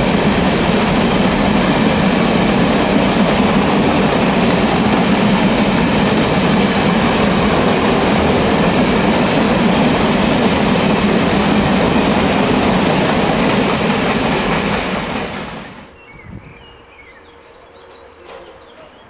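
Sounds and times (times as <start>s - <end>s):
train wheels rumbling on track: 0.0s - 16.2s.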